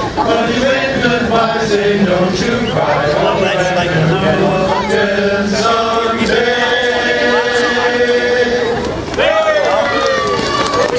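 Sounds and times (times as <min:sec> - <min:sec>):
men's chorus holding a chord: 0:00.0 - 0:10.0.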